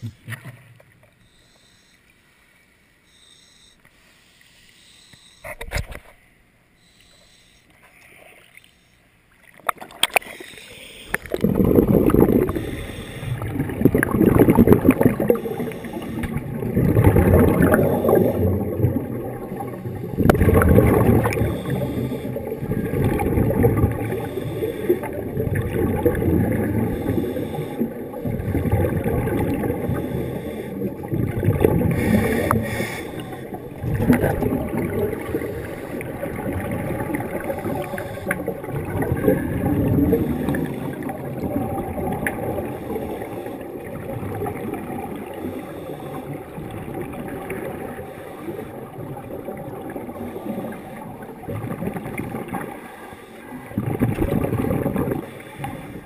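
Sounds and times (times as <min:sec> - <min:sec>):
underwater exhaled bubbles gurgling: 0:09.4 - 0:56.0.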